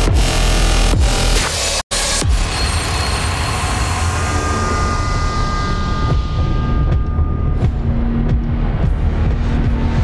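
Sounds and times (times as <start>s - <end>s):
steady high whine: 2.0s - 8.8s.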